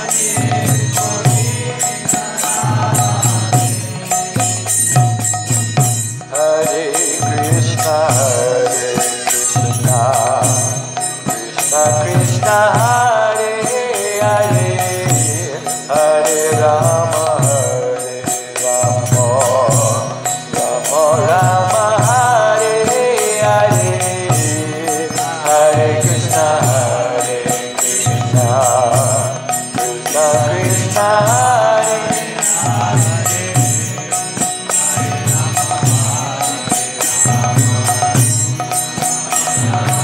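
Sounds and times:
steady percussion beat: 0.0s - 40.0s
person chanting a mantra: 6.3s - 38.2s.

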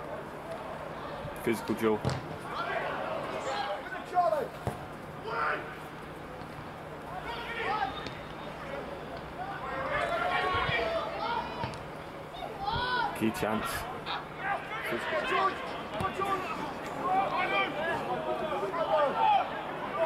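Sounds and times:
men shouting and calling: 1.5s - 4.6s, 5.2s - 5.8s, 7.1s - 8.1s, 9.3s - 11.6s, 12.4s - 20.0s.

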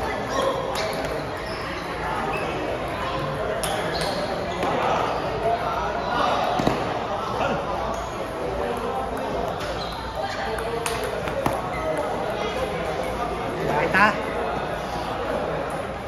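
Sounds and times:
chatter of voices: 0.0s - 16.0s.

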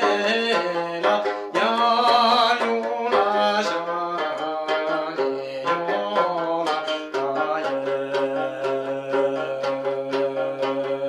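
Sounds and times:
plucked string instrument melody: 0.0s - 11.0s.

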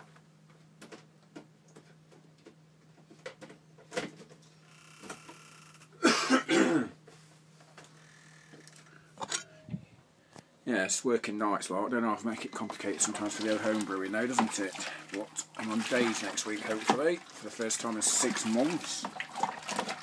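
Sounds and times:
steady low hum: 3.6s - 18.3s
man coughing: 6.0s - 7.0s.

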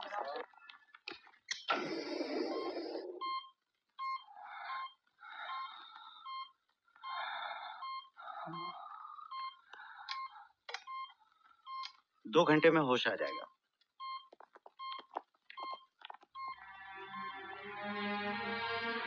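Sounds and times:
laboured breaths through oxygen mask: 1.7s - 3.3s, 4.2s - 10.5s
patient monitor beeping: 2.4s - 16.6s.

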